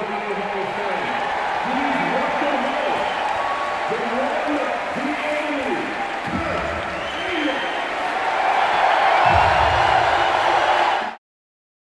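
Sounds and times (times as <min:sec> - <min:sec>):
crowd applauding and cheering: 0:00.0 - 0:11.2.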